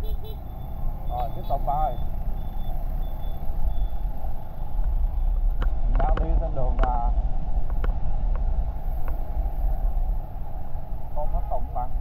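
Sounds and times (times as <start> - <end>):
scooter engine and road noise: 0.0 - 12.0
faint high beeping: 0.4 - 5.4.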